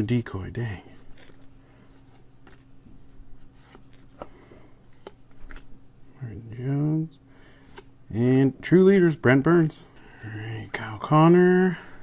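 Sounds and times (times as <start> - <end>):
trading cards rustling: 0.6 - 5.8
cards clicking: 1.1 - 1.5, 2.4 - 2.7, 3.6 - 5.7.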